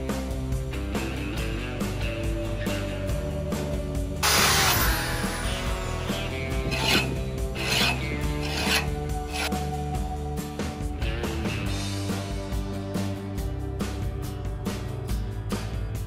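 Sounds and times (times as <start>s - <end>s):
guitar background music: 0.0s - 16.0s
hand file rasping on steel blade: 6.1s - 9.6s.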